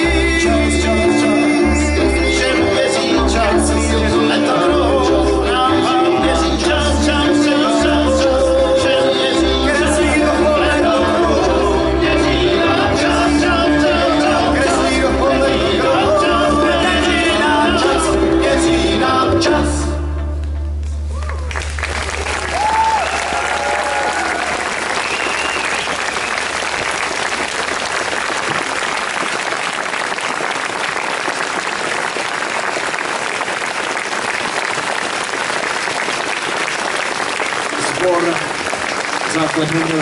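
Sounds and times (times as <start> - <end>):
audience applauding: 21.1 - 40.0.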